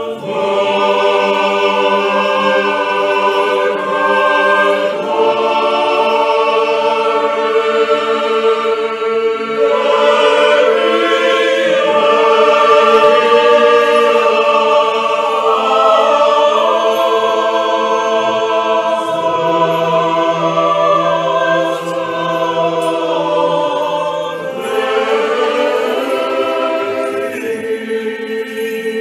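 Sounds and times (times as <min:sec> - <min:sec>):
choir singing slow chords: 0:00.0 - 0:29.0.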